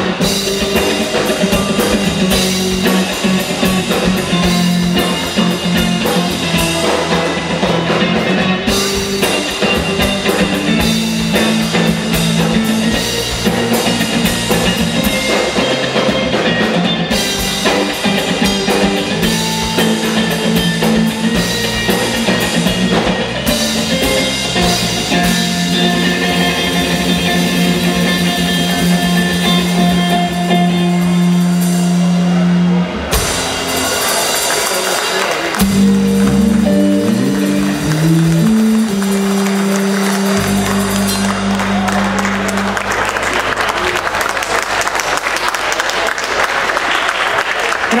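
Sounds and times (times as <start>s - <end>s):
blues band playing: 0.0s - 48.0s
audience applause: 33.0s - 48.0s.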